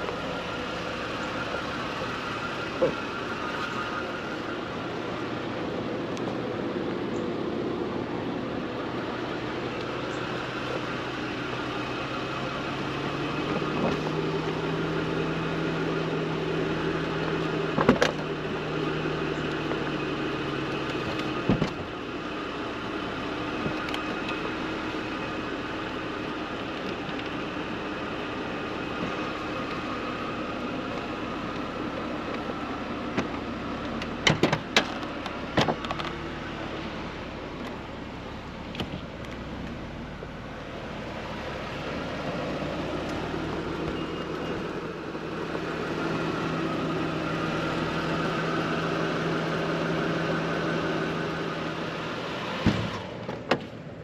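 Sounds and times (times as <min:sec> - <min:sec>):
convertible top clunks: 0:17.0 - 0:18.5, 0:19.2 - 0:22.0, 0:26.2 - 0:36.6, 0:52.5 - 0:54.0.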